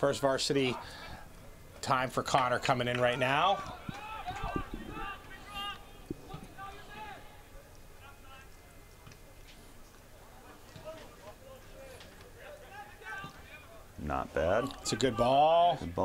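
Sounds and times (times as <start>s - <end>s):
distant voices shouting: 2.9s - 8.9s, 10.2s - 14.0s.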